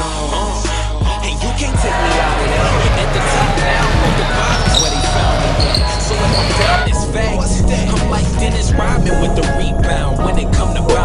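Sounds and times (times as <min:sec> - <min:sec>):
basketball bouncing on floor: 0:03.2 - 0:06.8
shoe squeaks: 0:03.3 - 0:07.0.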